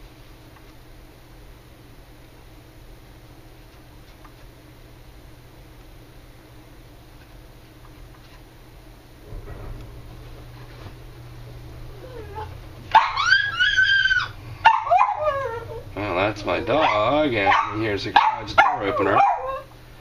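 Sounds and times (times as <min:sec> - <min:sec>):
low steady hum: 0:00.0 - 0:20.0
dog whining: 0:11.8 - 0:16.0, 0:16.6 - 0:19.7.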